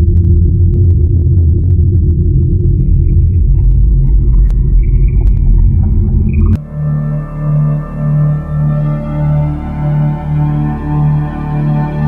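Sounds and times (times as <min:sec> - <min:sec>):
low rumble: 0:00.0 - 0:10.3.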